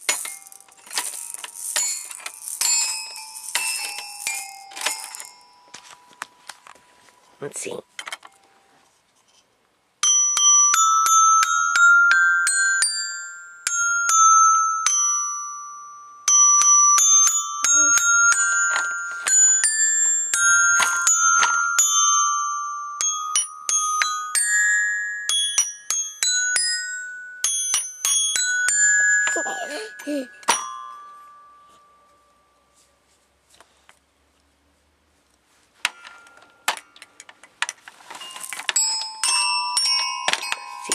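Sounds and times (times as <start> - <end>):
toy glockenspiel notes: 0.0 - 8.7, 10.0 - 33.0, 35.9 - 37.4, 38.0 - 40.9.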